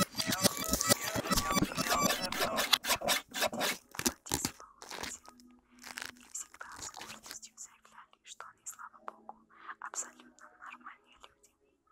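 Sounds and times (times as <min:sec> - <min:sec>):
faint whispering voice: 0:04.1 - 0:11.9.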